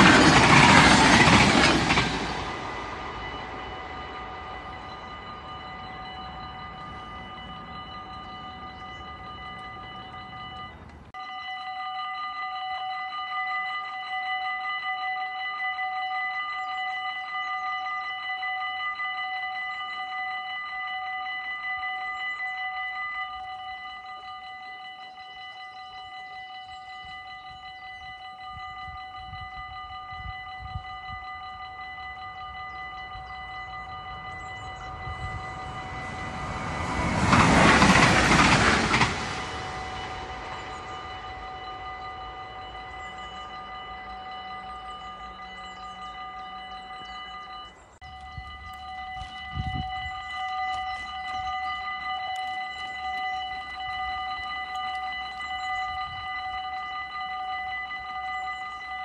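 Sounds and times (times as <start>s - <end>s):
train rushing past: 0.0s - 11.1s, 33.0s - 47.7s
level crossing warning bell: 0.0s - 59.0s.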